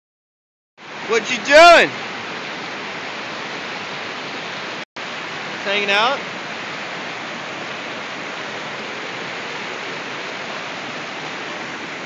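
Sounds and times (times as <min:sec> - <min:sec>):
river rushing over rocks: 0:00.8 - 0:12.0.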